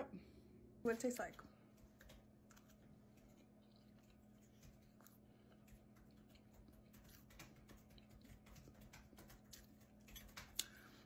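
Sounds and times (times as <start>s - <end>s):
low steady hum: 0.0s - 11.0s
person chewing food: 1.7s - 11.0s.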